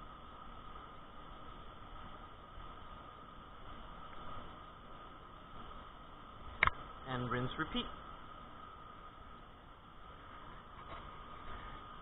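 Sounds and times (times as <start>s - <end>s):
faint high hum: 0.0s - 12.0s
low background hiss: 0.0s - 12.0s.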